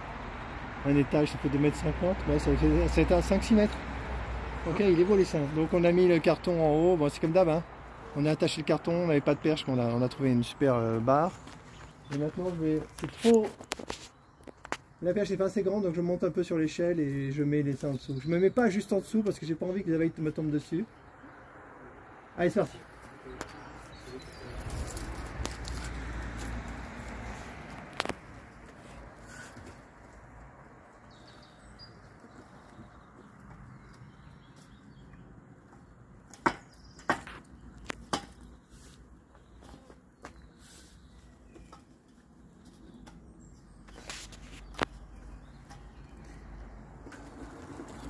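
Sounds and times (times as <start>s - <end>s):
sharp knocks and taps: 35.1s - 38.5s.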